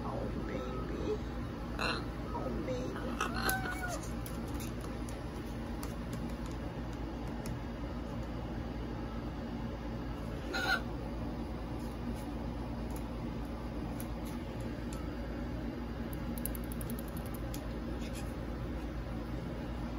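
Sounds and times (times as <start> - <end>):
low background hum: 0.0 - 19.9
parrot squawk: 3.0 - 4.1, 10.4 - 10.9.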